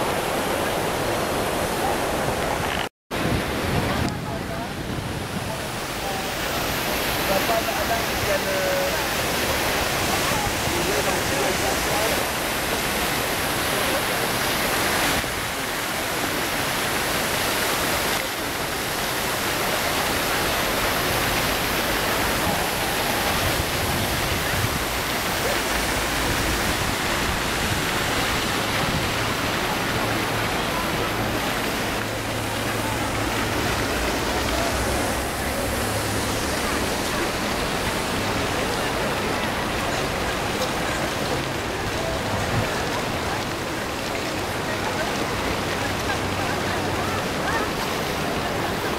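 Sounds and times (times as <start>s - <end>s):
fountain jets splashing: 0.0s - 48.9s.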